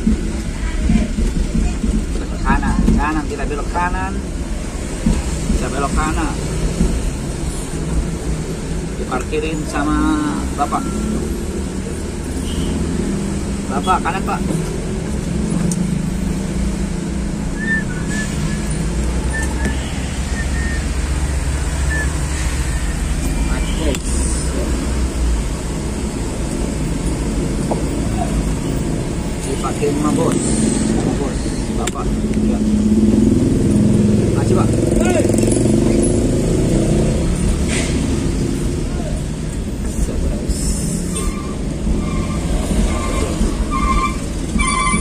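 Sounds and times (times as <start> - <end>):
motorcycles passing: 0.0 - 45.0
vehicle engine and road noise: 0.0 - 45.0.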